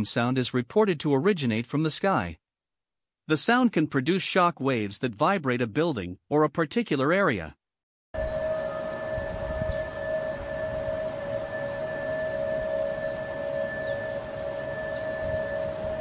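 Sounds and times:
two held drone tones: 0:08.2 - 0:16.0.

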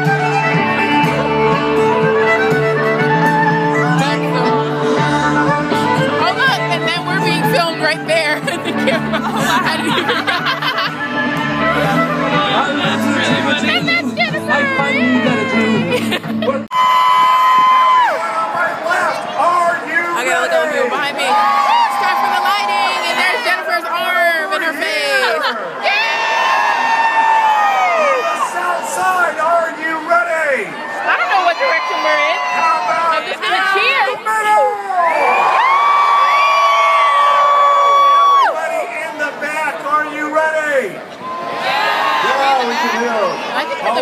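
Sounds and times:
amplified live music with singing: 0:00.0 - 0:16.6
crowd cheering and screaming: 0:13.6 - 0:24.2, 0:25.4 - 0:39.0, 0:41.1 - 0:44.0.

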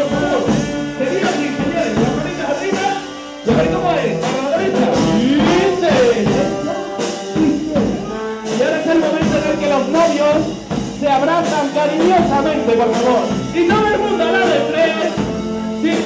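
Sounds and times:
brass band playing: 0:00.0 - 0:16.0.

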